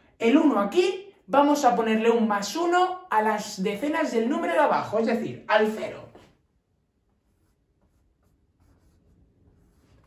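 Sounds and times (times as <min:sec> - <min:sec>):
marker writing on whiteboard: 0:05.7 - 0:10.0.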